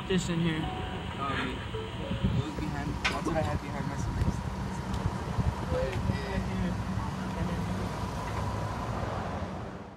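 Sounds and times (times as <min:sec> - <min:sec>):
motor vehicle rumble: 0:00.0 - 0:09.9.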